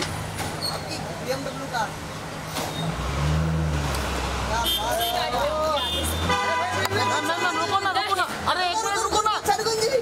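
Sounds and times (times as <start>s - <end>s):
people talking: 4.5s - 10.0s.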